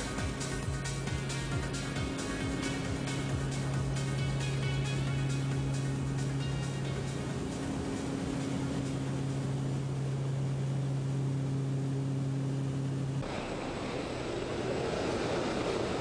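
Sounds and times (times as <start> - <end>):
plane engine drone: 0.0 - 16.0.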